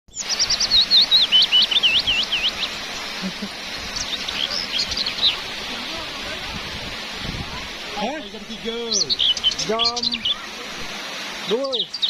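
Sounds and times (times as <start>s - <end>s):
songbird whistling: 0.1s - 2.7s, 8.9s - 10.5s.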